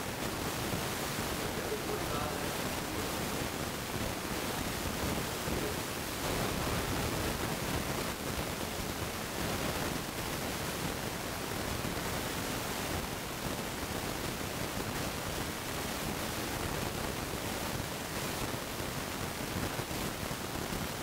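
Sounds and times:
steady hiss: 0.0s - 21.0s.

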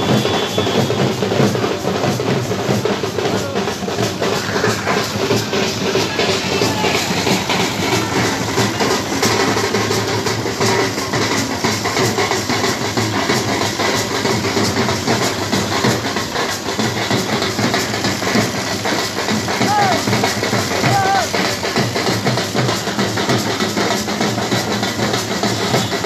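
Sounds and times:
drums beating rapid rhythm: 0.0s - 26.0s.

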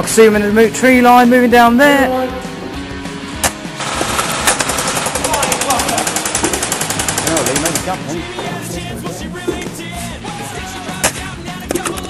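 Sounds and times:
rock music: 0.0s - 12.0s
airsoft gun firing: 3.4s - 8.0s.

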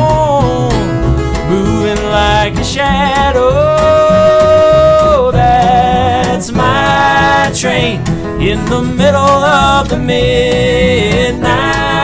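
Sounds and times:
acoustic guitars: 0.0s - 12.0s
upright bass: 0.0s - 12.0s.

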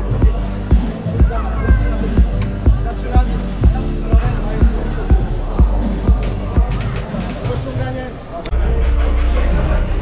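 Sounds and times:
music with steady drum beat: 0.0s - 8.0s
voices talking: 0.0s - 8.6s.

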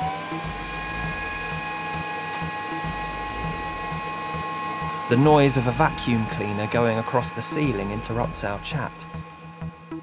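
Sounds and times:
vacuum cleaner motor whining: 0.0s - 10.0s.

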